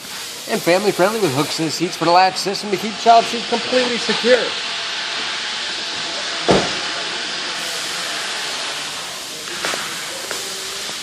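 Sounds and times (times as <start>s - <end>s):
recording hiss: 0.0s - 11.0s
thump: 6.5s - 6.8s.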